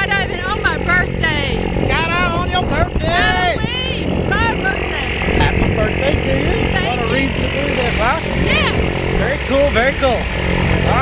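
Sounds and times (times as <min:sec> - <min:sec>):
excited talking: 0:00.0 - 0:11.0
low engine hum: 0:00.0 - 0:11.0.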